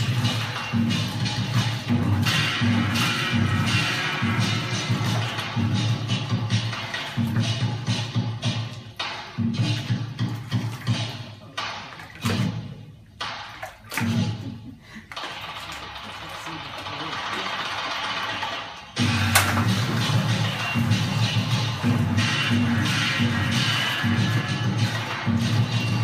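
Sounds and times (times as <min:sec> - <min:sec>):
music with heavy low beat: 0:00.0 - 0:26.0
water churning and splashing: 0:09.7 - 0:14.4.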